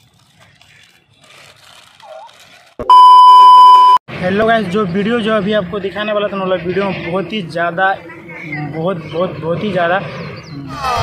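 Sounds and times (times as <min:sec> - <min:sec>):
loud steady high beep: 0:02.9 - 0:04.0
children eating and giggling: 0:08.0 - 0:08.9.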